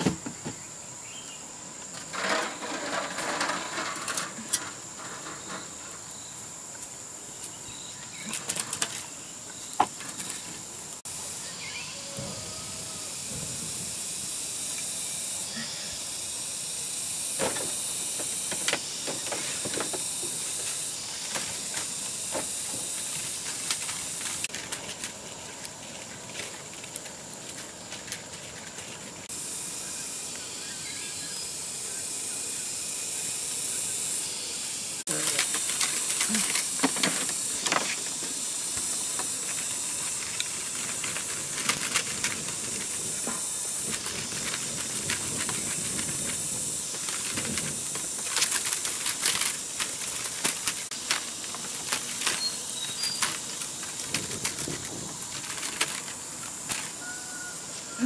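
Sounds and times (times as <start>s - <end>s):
steady high-pitched hiss: 0.0s - 58.0s.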